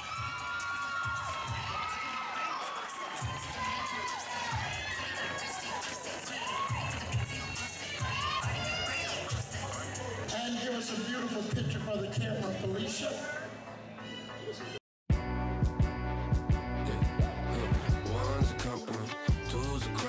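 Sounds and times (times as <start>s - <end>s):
audience cheering and screaming: 0.0s - 10.0s.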